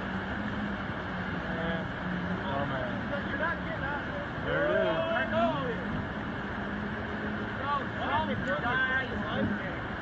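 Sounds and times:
steady low hum: 0.0 - 10.0
water rushing over a weir: 0.0 - 10.0.

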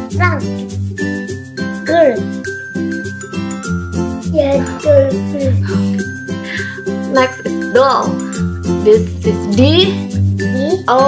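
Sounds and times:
cheerful children's music: 0.0 - 11.0.

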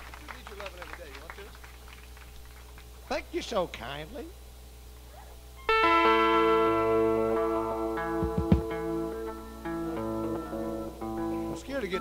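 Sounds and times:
electric guitar chord ringing: 5.6 - 12.0.

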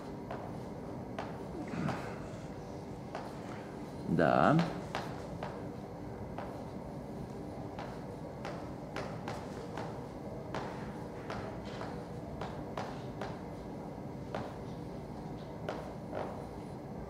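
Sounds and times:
low room noise: 0.0 - 17.0.

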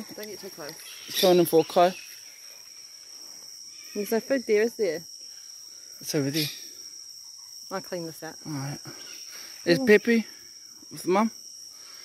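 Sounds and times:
jungle insects droning: 0.0 - 12.0.

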